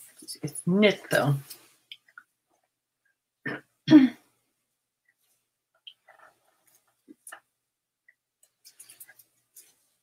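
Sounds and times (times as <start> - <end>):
woman clearing her throat: 3.5 - 4.3.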